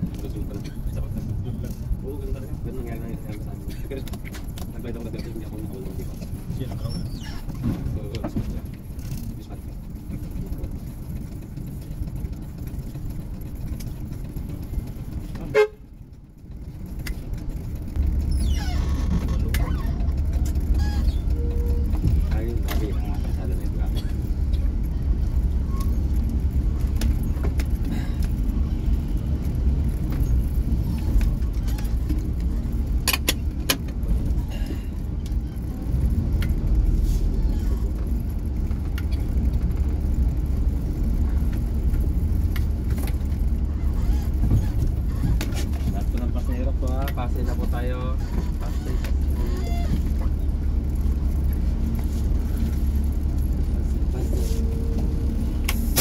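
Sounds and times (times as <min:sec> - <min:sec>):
bus engine and road noise: 0:00.0 - 0:56.0.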